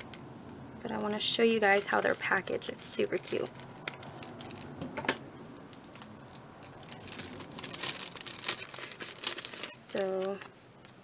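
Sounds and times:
plastic packaging crinkling: 0.8s - 11.0s.

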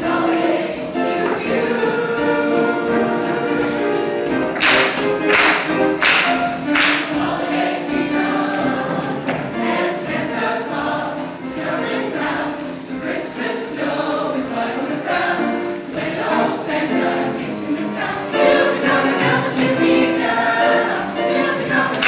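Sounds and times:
choir singing in harmony: 0.0s - 22.0s.

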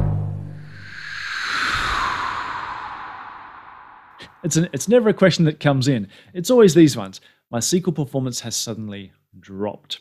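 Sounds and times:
whoosh: 0.4s - 4.6s.

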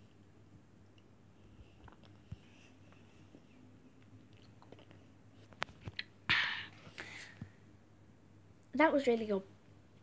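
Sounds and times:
chewing a treat: 4.0s - 5.1s.

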